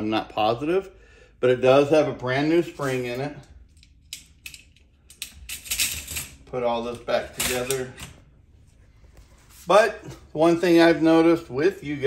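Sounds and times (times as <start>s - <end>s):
metal gun parts clicking: 3.7s - 6.4s.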